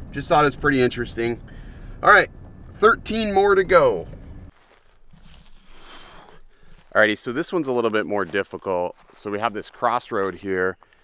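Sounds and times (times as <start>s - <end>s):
soft footsteps on dirt track: 3.9s - 11.0s.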